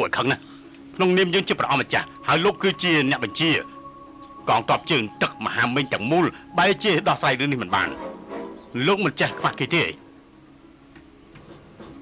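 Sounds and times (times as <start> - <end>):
low sustained tone: 0.0 - 11.4.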